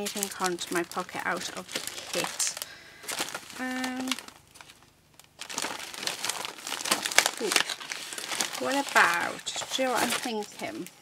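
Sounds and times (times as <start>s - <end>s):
paper and card rustling: 0.0s - 11.0s.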